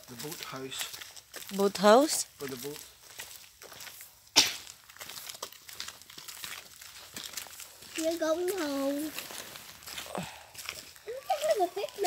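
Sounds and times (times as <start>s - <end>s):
footsteps on woodland path: 0.0s - 12.0s.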